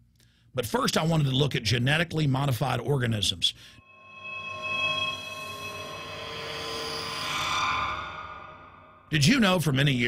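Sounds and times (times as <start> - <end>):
rushing noise: 3.8 - 9.1
synthesized transition drone: 3.8 - 9.1.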